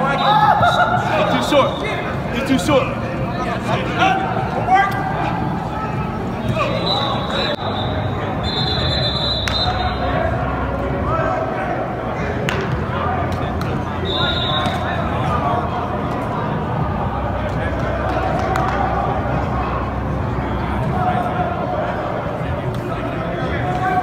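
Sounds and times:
voices calling out: 0:00.0 - 0:24.0.

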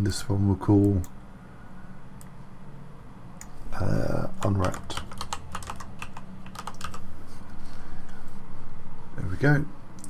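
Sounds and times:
keyboard typing: 0:04.2 - 0:07.1.

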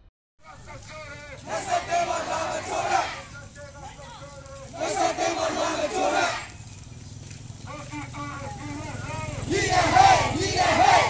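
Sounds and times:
crowd shouting slogans: 0:00.5 - 0:06.6, 0:09.0 - 0:11.0.

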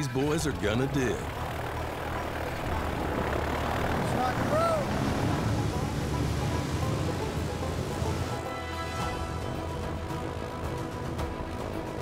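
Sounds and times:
propeller engine drone: 0:00.0 - 0:12.0.

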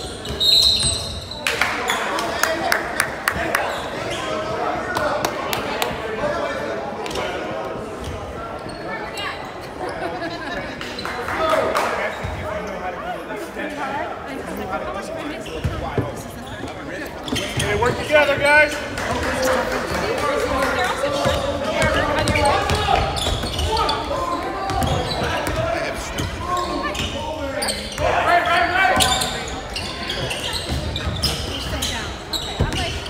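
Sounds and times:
spectators talking and shouting: 0:00.0 - 0:33.0.

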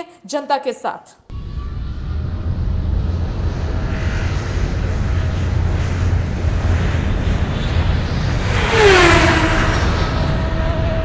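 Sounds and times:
bass-heavy rumbling: 0:01.3 - 0:11.0.

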